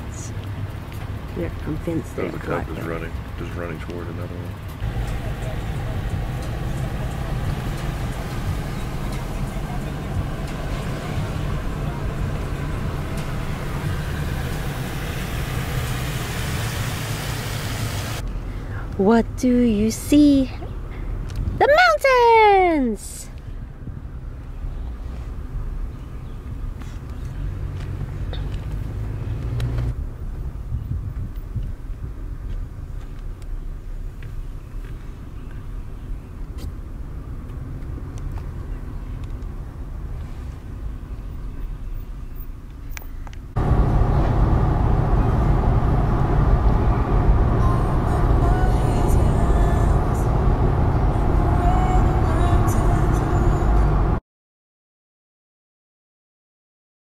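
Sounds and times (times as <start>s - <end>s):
car cabin road rumble: 0.0s - 22.0s, 23.3s - 54.2s
hiss: 14.4s - 18.2s.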